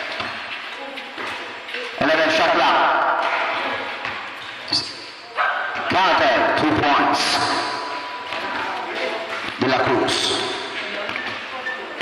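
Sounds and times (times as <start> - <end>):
man commentating: 2.0 - 3.2, 5.9 - 8.1, 9.6 - 10.7.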